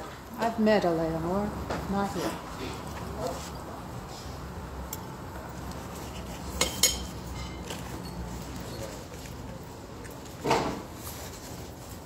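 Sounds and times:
low background noise: 0:00.0 - 0:12.0
tableware clinking: 0:06.5 - 0:09.4.

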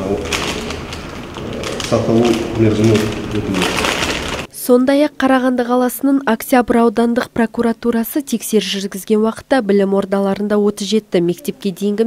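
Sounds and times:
man speaking: 0:00.0 - 0:00.8, 0:01.4 - 0:03.9
paper sheets rustling: 0:00.0 - 0:04.5.

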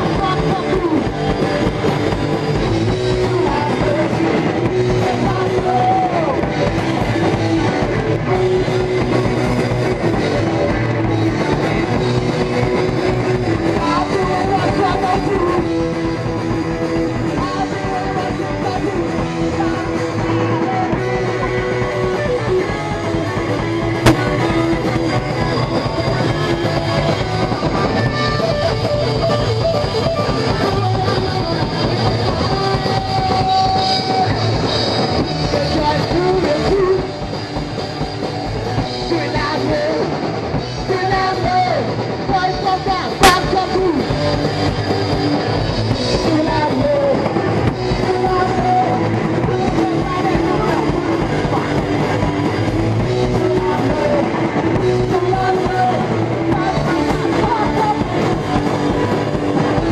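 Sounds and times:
punk rock band playing live: 0:00.0 - 0:59.9.

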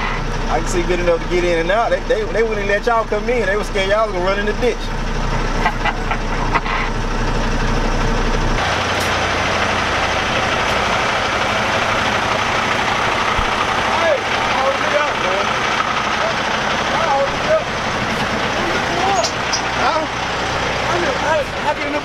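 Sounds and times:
diesel truck engines idling: 0:00.0 - 0:22.0.

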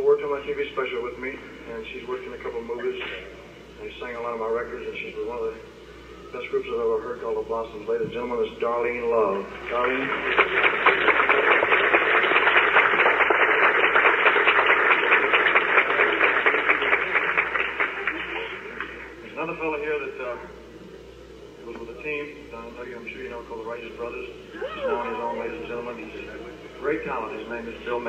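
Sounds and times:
man speaking over sound system: 0:00.0 - 0:05.7, 0:06.3 - 0:10.4, 0:18.3 - 0:20.6, 0:21.6 - 0:28.0
audience applause: 0:09.6 - 0:19.0.

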